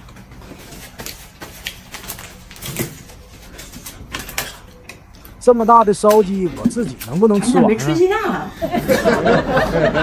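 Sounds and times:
paper tissue rustling: 0.4s - 4.1s.

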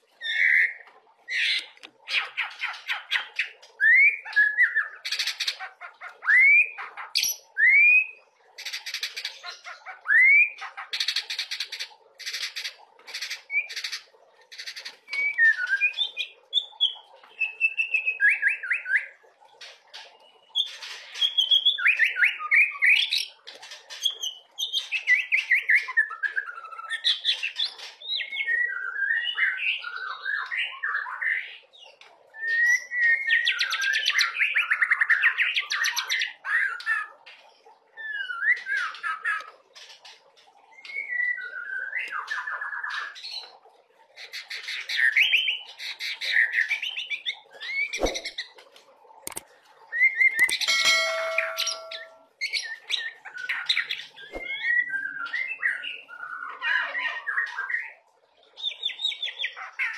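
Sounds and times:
songbird singing: 49.3s - 56.4s.

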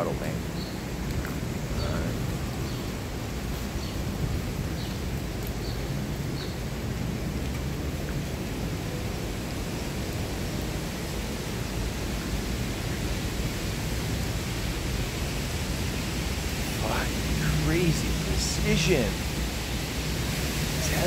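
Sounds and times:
street ambience in light rain: 0.0s - 21.0s.

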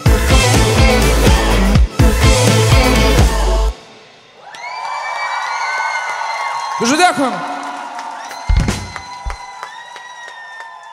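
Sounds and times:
crowd cheering and clapping: 4.3s - 10.9s
heavy low drum hits: 8.5s - 9.4s.

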